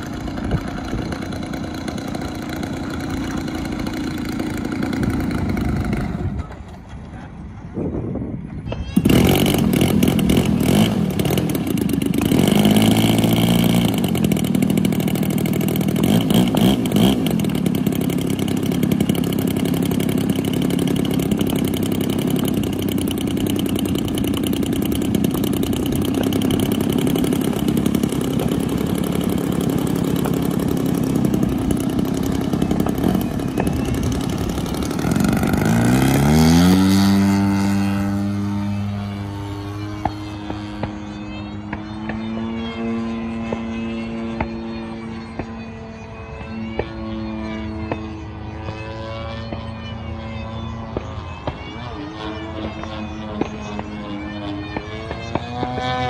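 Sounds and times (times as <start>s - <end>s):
model airplane engine: 0.0s - 56.0s
second model airplane engine: 0.0s - 56.0s.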